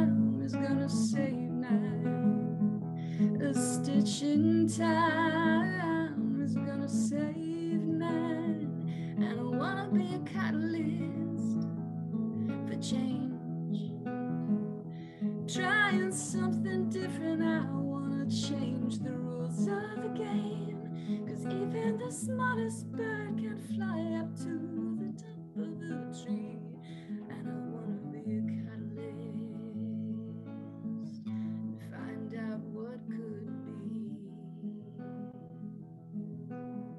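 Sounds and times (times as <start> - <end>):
woman singing with vibrato: 0.0 - 2.5, 3.4 - 11.5, 12.7 - 13.5, 15.5 - 30.6, 31.8 - 35.2
acoustic guitar chords: 0.0 - 36.9.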